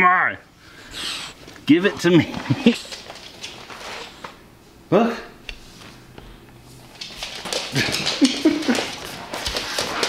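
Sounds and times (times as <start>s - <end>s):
puppy paws on wooden floor: 1.4s - 4.4s, 5.5s - 10.0s
man laughing: 2.2s - 2.8s, 7.7s - 9.1s.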